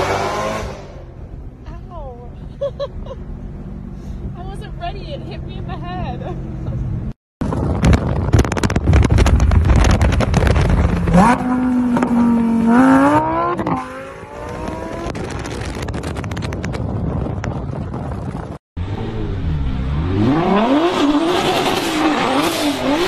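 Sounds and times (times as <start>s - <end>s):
road noise: 0.0s - 23.0s.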